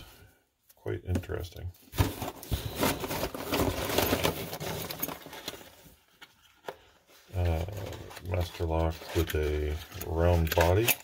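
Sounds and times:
cardboard pieces rustling: 1.9s - 10.9s.

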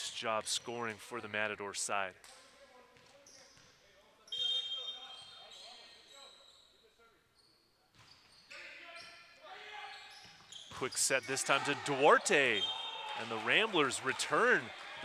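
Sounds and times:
volleyball rally: 0.0s - 6.4s, 7.8s - 15.0s
referee's whistle: 4.3s - 6.7s, 9.8s - 13.3s.

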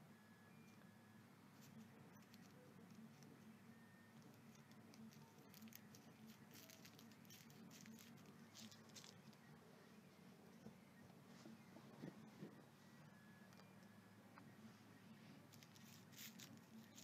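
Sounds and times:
faint low hum: 0.0s - 17.0s
faint clicks and rustles: 1.6s - 9.6s, 10.5s - 17.0s.

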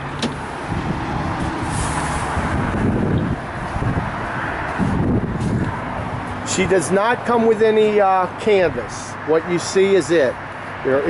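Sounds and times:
road traffic passing: 0.0s - 11.0s.

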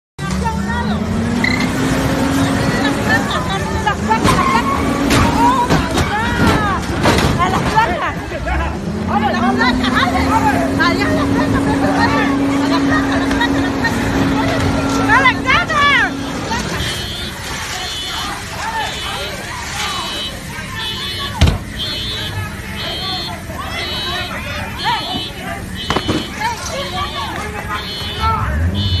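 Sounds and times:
people shouting excitedly: 2.4s - 6.9s, 7.7s - 29.0s.

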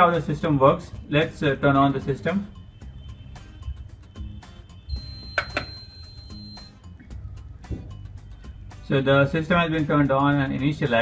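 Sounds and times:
background music: 0.0s - 11.0s
high-pitched buzzer beep: 4.9s - 6.8s.

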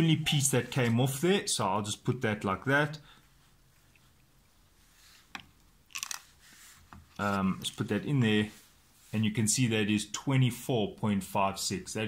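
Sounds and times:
plastic pieces clicking: 5.9s - 6.3s.

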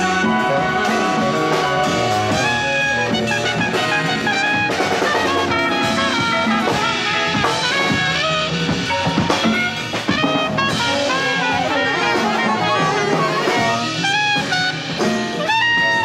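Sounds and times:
conga drums: 0.0s - 16.0s
drum kit: 0.0s - 16.0s
saxophone: 0.0s - 16.0s
trumpet: 0.0s - 16.0s.

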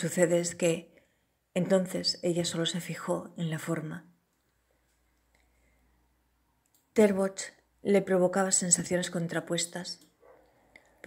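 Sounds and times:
person narrating: 0.0s - 1.0s, 1.6s - 4.2s, 6.9s - 10.1s
faint small clicks: 6.6s - 7.0s.

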